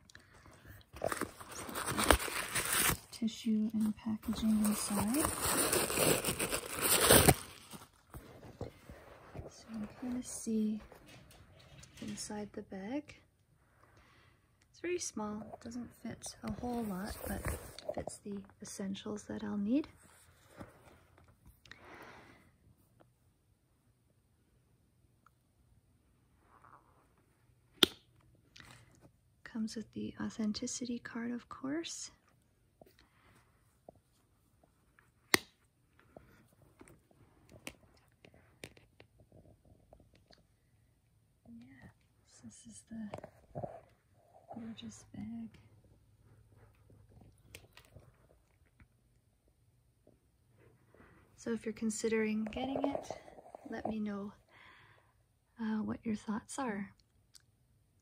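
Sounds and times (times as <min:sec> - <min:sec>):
tissue paper crinkling: 0:01.0 - 0:03.2, 0:03.8 - 0:08.4.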